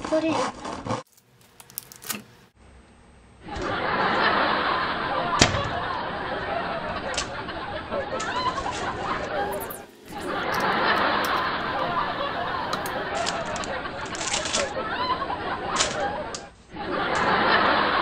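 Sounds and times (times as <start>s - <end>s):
background chatter and giggling: 3.4s - 18.0s.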